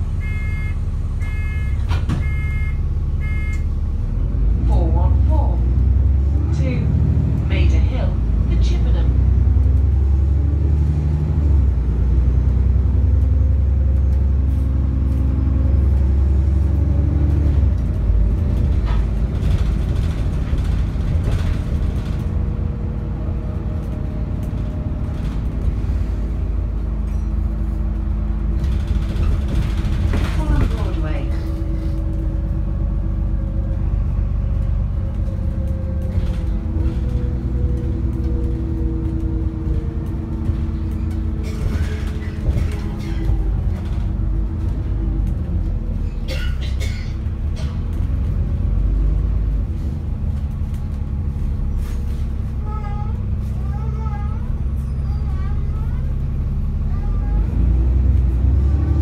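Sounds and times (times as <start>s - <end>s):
bus engine drone: 0.0s - 59.0s.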